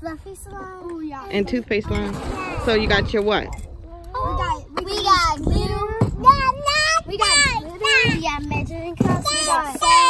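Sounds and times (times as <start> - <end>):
child singing: 3.9 - 10.0.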